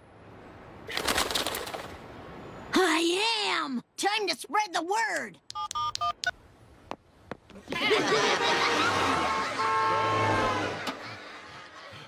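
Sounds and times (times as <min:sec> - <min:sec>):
vehicle rushing past: 0:08.2 - 0:11.7.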